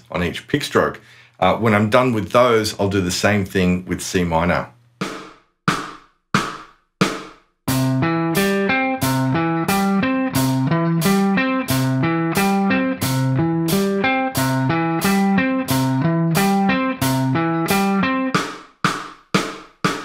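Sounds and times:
electric guitar arpeggios: 0:07.7 - 0:18.4.

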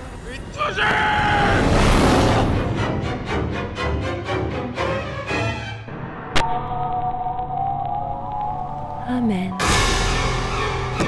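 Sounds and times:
wavering siren-like tone: 0:06.4 - 0:10.0.

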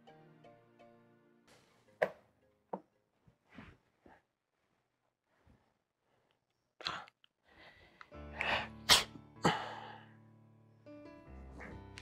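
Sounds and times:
soft background music: 0:00.0 - 0:03.6, 0:07.6 - 0:12.0.

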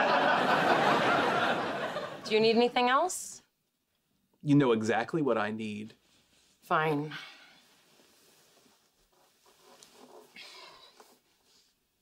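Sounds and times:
faint rustles and knocks: 0:07.7 - 0:11.9.

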